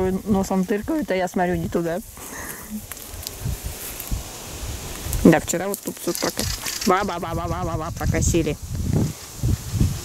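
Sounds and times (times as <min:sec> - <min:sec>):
footsteps through grass: 0:00.0 - 0:10.0.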